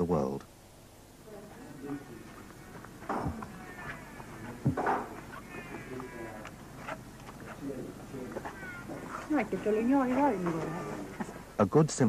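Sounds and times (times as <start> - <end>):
faint background voices: 1.2 - 11.8
animal's wavering call: 2.5 - 11.3.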